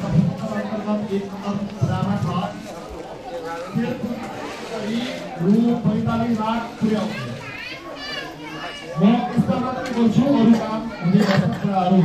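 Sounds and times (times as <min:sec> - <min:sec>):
man talking: 0:00.0 - 0:02.7, 0:09.0 - 0:12.0
child talking: 0:07.0 - 0:09.0.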